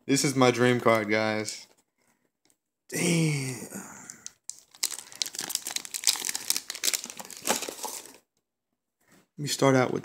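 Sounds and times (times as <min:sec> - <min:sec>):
hard plastic crackling in hands: 0:04.0 - 0:08.4.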